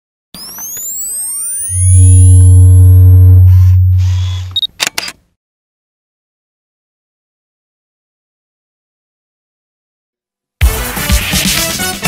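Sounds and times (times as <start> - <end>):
electronic rising sweeps: 0.4 - 4.6
higher steady tones: 0.8 - 4.6
deep bass tone: 1.7 - 4.6.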